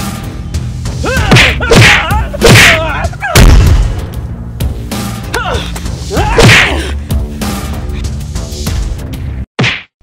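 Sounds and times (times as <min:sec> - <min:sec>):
background music: 0:00.0 - 0:09.5
loud sharp whack: 0:06.4 - 0:06.7, 0:09.6 - 0:09.9.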